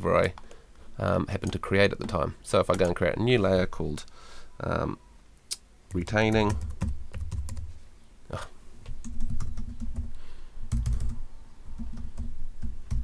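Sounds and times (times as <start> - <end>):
computer keyboard typing: 2.7 - 3.0, 5.9 - 7.7, 8.9 - 11.2, 11.8 - 13.0.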